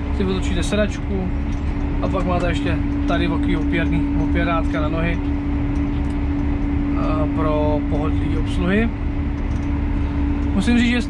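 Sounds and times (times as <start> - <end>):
constant hum: 0.0 - 11.0
tractor diesel engine drone: 0.0 - 11.0.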